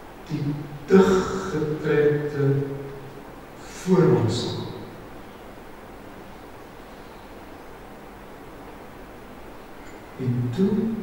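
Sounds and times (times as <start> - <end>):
man speaking: 0.3 - 2.9, 3.6 - 4.9, 10.2 - 11.0.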